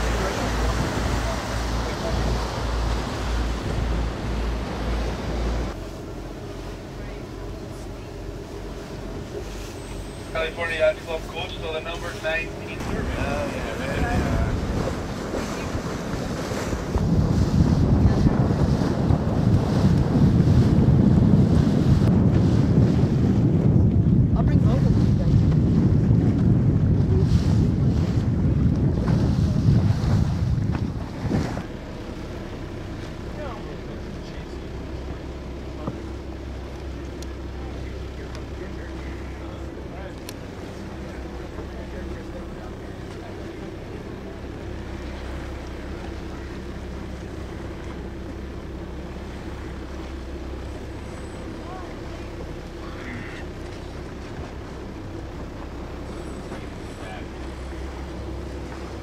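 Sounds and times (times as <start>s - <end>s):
motor boat engine drone: 0.0s - 59.0s
sea rushing: 0.0s - 59.0s
wind buffeting microphone: 12.8s - 31.8s.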